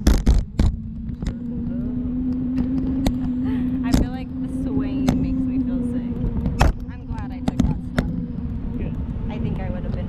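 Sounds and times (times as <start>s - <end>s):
faint held hum: 0.0s - 10.0s
wind buffeting microphone: 0.0s - 10.0s.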